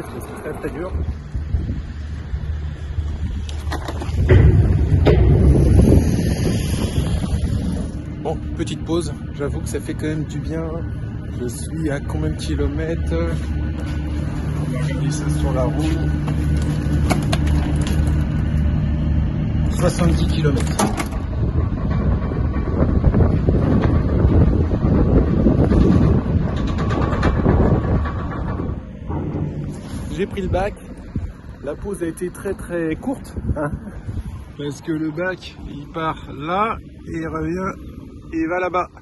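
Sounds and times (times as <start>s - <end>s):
ferry engine drone: 0.0s - 39.0s
low rumble: 0.0s - 39.0s
wind buffeting microphone: 0.0s - 39.0s.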